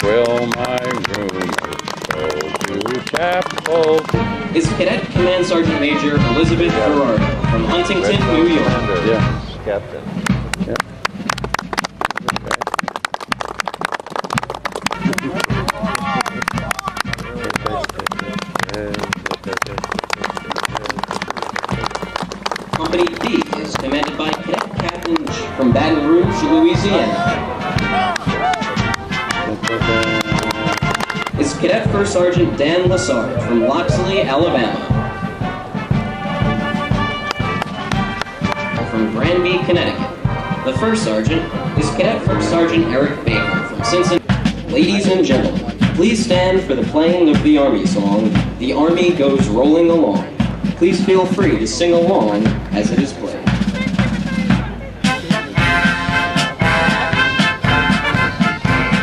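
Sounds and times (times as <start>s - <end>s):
voices talking: 0.0s - 11.0s, 14.3s - 59.0s
band music: 0.0s - 59.0s
sharp taps and clicks: 29.3s - 31.4s.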